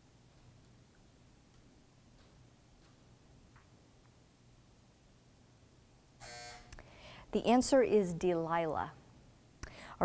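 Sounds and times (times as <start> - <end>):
game-show buzzer: 6.2 - 6.7.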